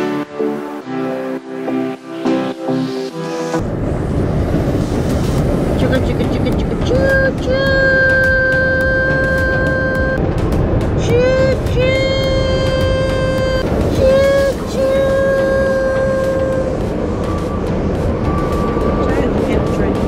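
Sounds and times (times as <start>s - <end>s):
road noise inside moving car: 3.6s - 20.0s
voice imitating train whistle: 6.8s - 10.2s, 11.1s - 16.8s.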